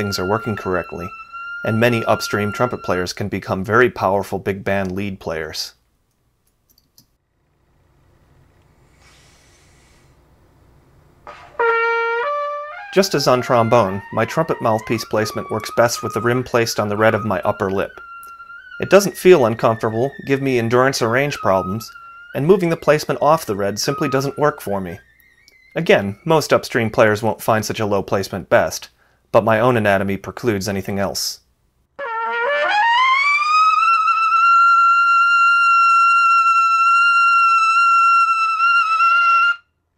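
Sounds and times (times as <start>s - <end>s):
trumpet rising phrase: 0.0s - 3.2s, 11.3s - 27.2s, 32.0s - 39.6s.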